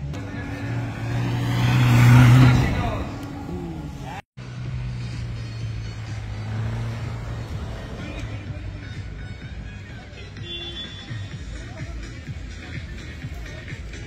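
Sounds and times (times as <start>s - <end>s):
car engine running hard: 0.0s - 9.8s
car engine running steadily: 0.0s - 10.6s.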